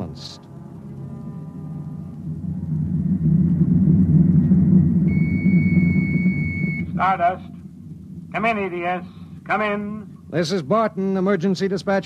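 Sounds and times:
low spaceship rumble: 0.0 - 12.0
high electronic beep tone: 5.1 - 7.5.

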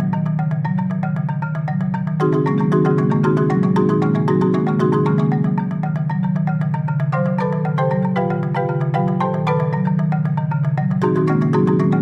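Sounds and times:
mallet percussion pattern: 0.0 - 12.0.

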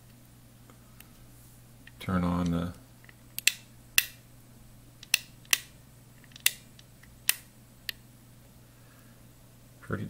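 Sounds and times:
faint steady low hum: 0.0 - 10.0
sharp clicks: 1.9 - 4.2, 5.0 - 8.0.

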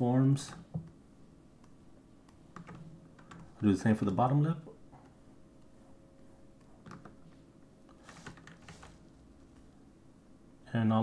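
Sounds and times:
faint steady hum: 0.0 - 11.0
computer mouse clicks: 1.6 - 3.5, 6.6 - 7.2.

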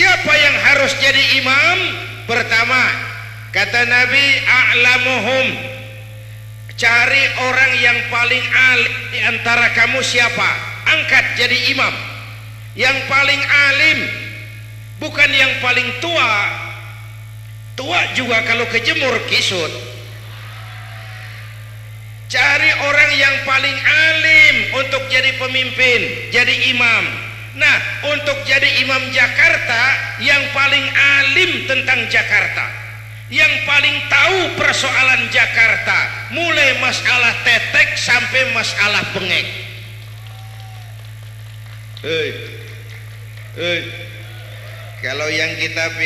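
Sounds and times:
speech over loudspeaker: 0.0 - 6.1, 17.8 - 20.2, 42.0 - 42.8, 43.6 - 44.4
low electrical hum: 0.0 - 46.0.

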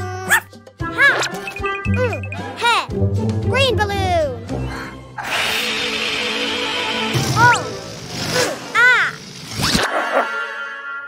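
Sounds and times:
children's music: 0.0 - 4.9
cartoon puppy yips: 0.2 - 1.4
balloon being blown up hiss: 5.2 - 8.8.

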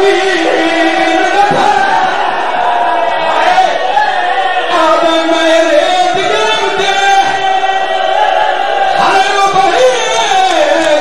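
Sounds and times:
man chanting: 0.0 - 2.1, 4.7 - 7.4, 9.0 - 11.0.

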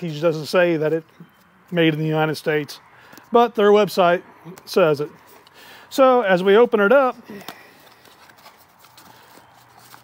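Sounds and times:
cardboard box being opened: 7.4 - 10.0.

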